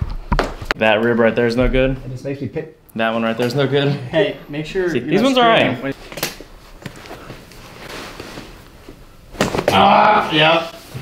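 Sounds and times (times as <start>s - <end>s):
clothing rustling: 5.9s - 9.7s.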